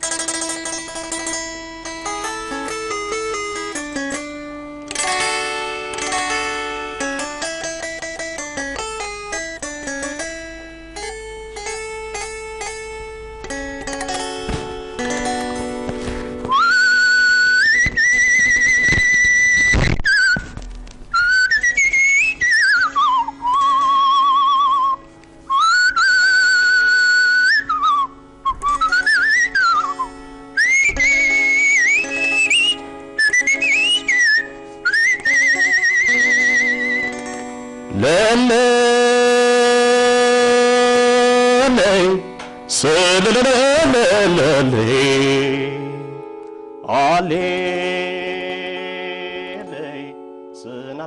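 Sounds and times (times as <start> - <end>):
plucked lyre strings: 0.0 - 51.0
man whistling a melody: 16.5 - 20.5, 21.1 - 37.2
man singing a long held note: 37.9 - 46.2, 46.8 - 51.0.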